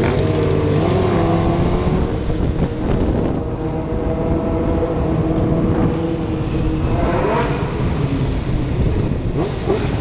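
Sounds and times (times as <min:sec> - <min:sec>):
motorcycle engines droning: 0:00.0 - 0:10.0
motorcycle revving: 0:00.0 - 0:10.0
wind rumble on microphone: 0:00.0 - 0:10.0.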